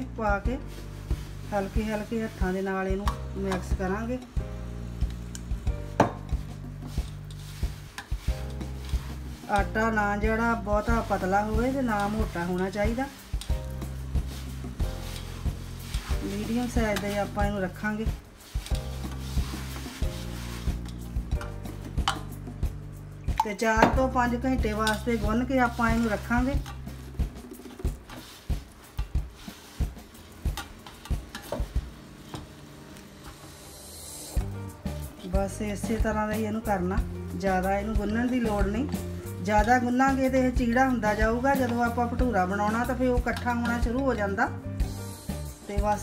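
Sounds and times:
hands mixing wet dough: 0.1 - 4.2, 5.1 - 22.4, 23.4 - 32.6, 34.4 - 46.0.

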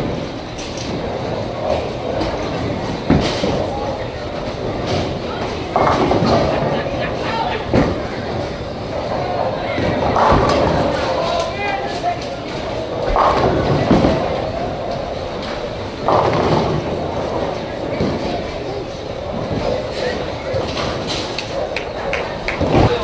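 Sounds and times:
bowling balls rumbling: 0.0 - 23.0
bowling pins crashing: 0.0 - 23.0
murmur of voices: 0.0 - 23.0.

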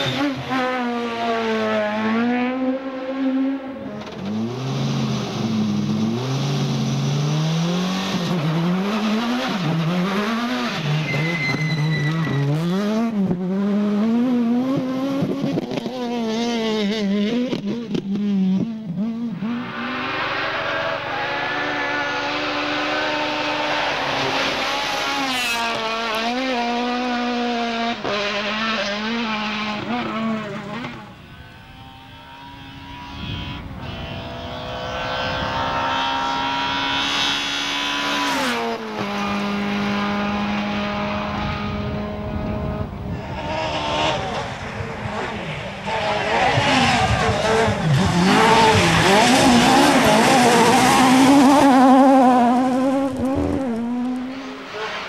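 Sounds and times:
rally car engines at full throttle: 0.0 - 55.0.

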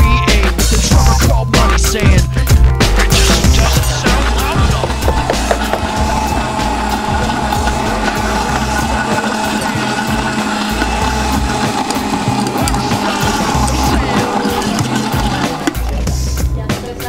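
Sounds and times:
background music with a beat: 0.0 - 17.0
blender motor whine: 3.1 - 16.6.

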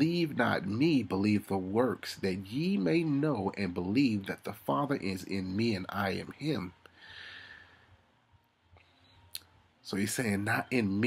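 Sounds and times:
man speaking: 0.0 - 6.8, 9.8 - 11.0.

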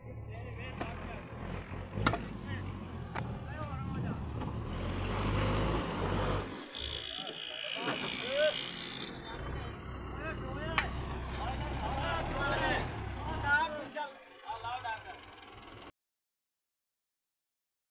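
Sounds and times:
tractor diesel engine drone: 0.0 - 15.9.

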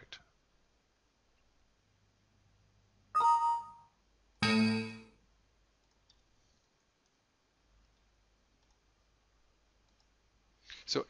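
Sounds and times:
computer mouse clicks: 5.8 - 7.2, 7.8 - 8.9, 9.8 - 10.2.

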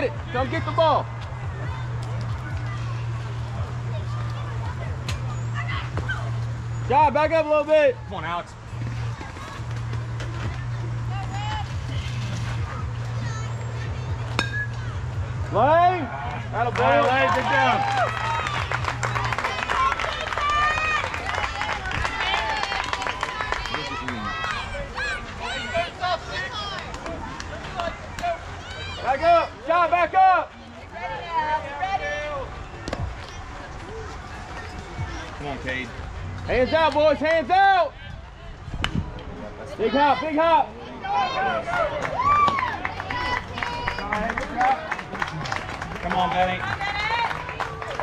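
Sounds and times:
distant chatter: 0.0 - 48.0
metal bat hitting ball: 14.4 - 14.8.

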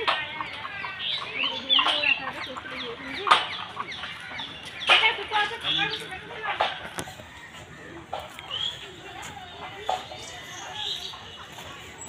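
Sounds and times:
birds calling: 0.0 - 12.0
bird chirps: 8.2 - 12.0.

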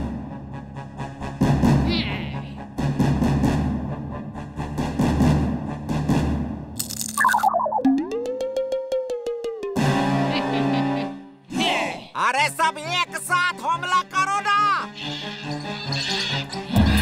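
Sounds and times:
cartoon soundtrack music: 0.0 - 17.0.

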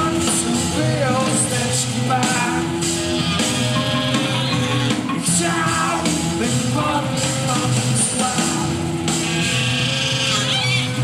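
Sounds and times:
live band music: 0.0 - 11.0
strummed guitar: 0.0 - 11.0.

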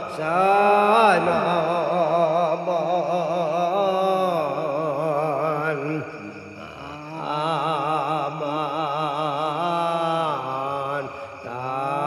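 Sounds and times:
wordless chant-like singing: 0.0 - 12.0.

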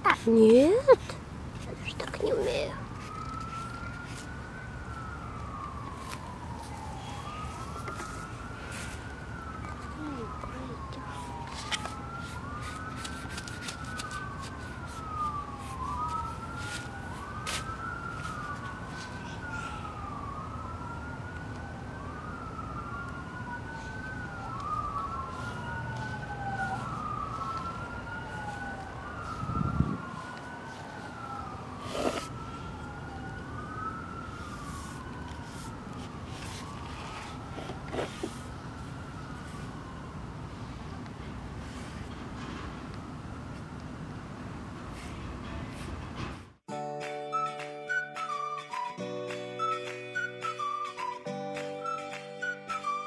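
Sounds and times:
distant siren wailing: 0.0 - 41.6, 42.4 - 45.0, 47.3 - 53.0.

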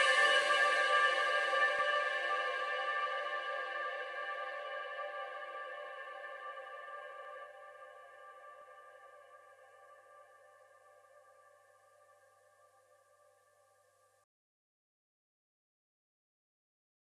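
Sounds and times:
ambient electronic music: 0.0 - 9.8.

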